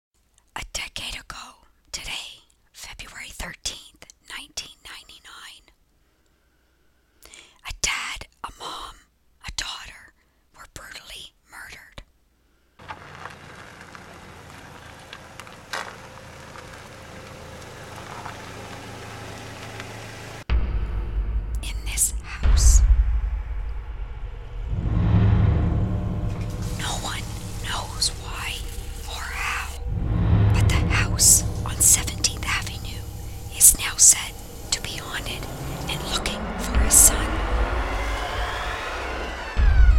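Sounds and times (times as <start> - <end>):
person whispering: 0.6 - 5.8, 7.3 - 12.1, 21.6 - 22.8, 26.6 - 29.9, 30.5 - 37.4
deep low rumble: 20.5 - 39.9.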